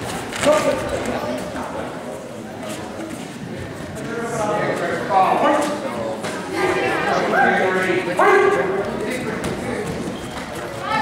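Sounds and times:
crowd murmur in gym: 0.0s - 11.0s.

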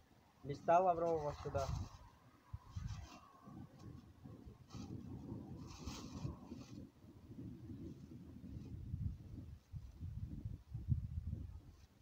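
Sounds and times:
wind rumble on microphone: 0.5s - 12.0s.

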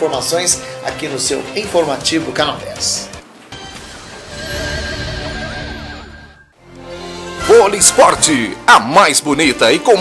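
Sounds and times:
warbling tone: 3.7s - 6.6s.

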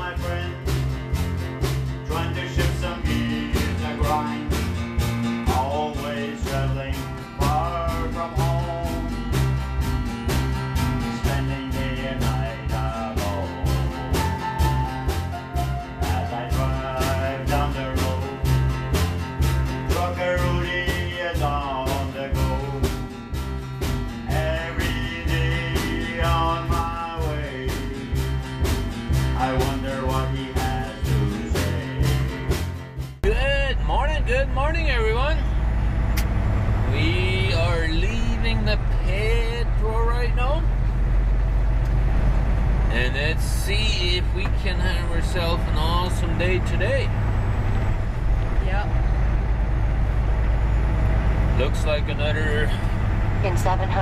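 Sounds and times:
music with steady beat: 0.0s - 33.4s
diesel truck engine drone: 0.0s - 54.0s.

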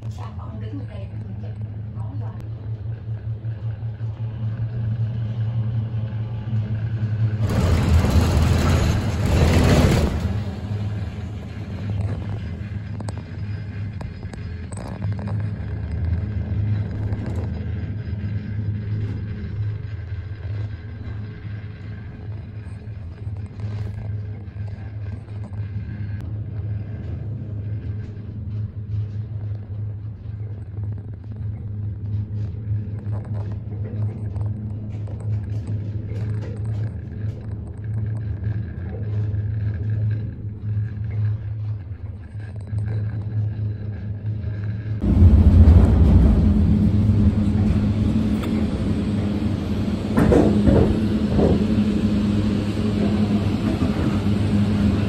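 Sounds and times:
gondola cabin humming on cable: 0.0s - 55.0s
rushing rumble over pylon: 45.0s - 49.4s.

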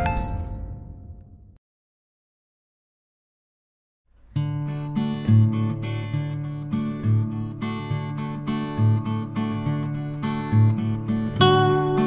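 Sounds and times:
bright jingle chime: 0.0s - 1.2s.

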